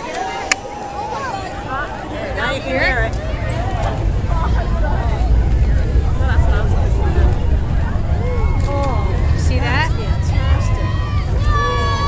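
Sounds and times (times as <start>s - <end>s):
faint chatter of voices: 0.0s - 12.0s
distant rocket engine rumble: 1.8s - 12.0s.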